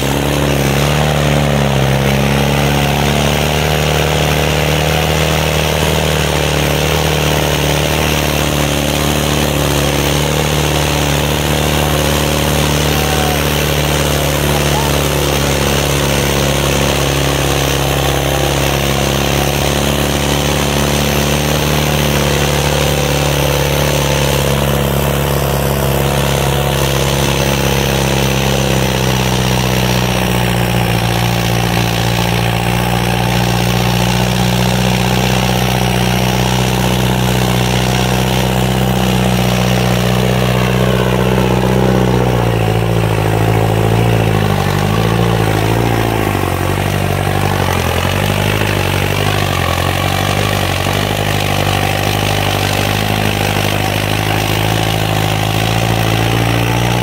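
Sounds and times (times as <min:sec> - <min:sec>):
tractor diesel engine under load: 0:00.0 - 0:57.0.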